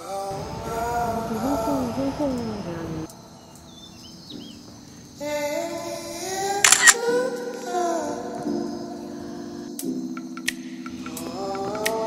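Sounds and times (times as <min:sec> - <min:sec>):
rising background music tone: 0:00.0 - 0:12.0
camera shutter clicking: 0:06.6 - 0:07.0.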